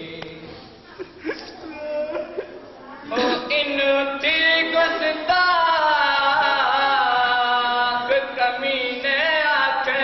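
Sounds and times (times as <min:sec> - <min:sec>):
man chanting a lament: 0:03.1 - 0:10.0.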